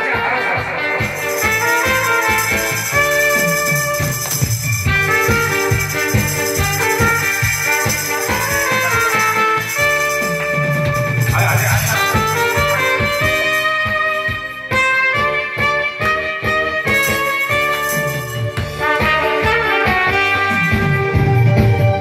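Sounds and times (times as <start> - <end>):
trumpet playing: 0.0 - 21.9
live band music: 0.0 - 22.0.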